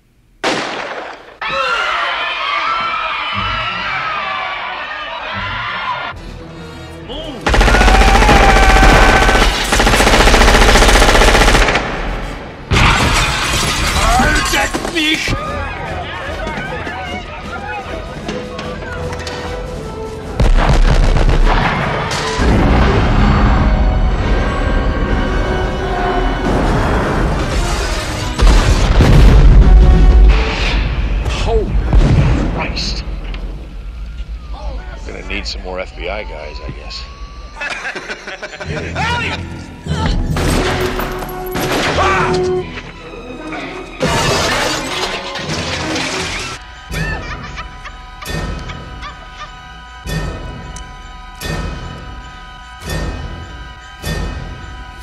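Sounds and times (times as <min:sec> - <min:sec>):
orchestral film music: 0:03.2 - 0:10.6, 0:14.8 - 0:32.1, 0:35.0 - 0:55.0
window glass shattering: 0:12.7 - 0:15.2, 0:44.0 - 0:46.6
explosion blast: 0:20.4 - 0:24.7, 0:28.4 - 0:33.6.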